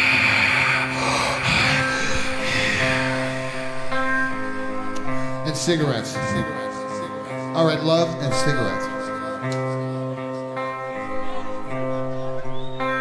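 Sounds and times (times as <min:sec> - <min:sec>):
steady noisy wash: 0:00.0 - 0:05.5
droning electric guitar: 0:00.0 - 0:13.0.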